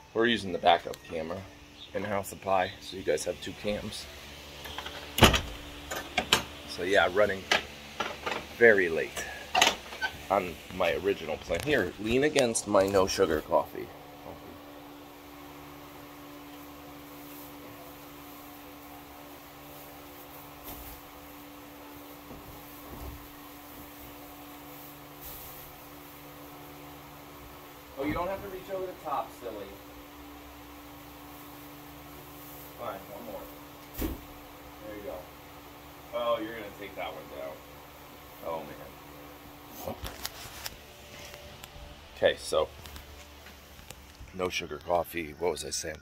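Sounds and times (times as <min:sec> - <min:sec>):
electric fan motor hum: 0:00.0 - 0:45.8.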